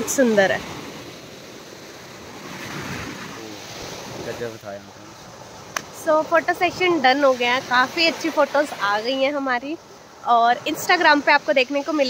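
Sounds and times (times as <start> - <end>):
small waves breaking on beach: 0.0 - 12.0.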